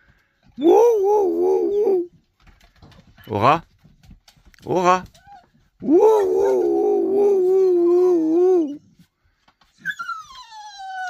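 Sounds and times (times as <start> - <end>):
man imitating a howl: 0.6 - 2.1, 5.8 - 8.8
dog whining: 5.2 - 8.9, 9.8 - 11.0.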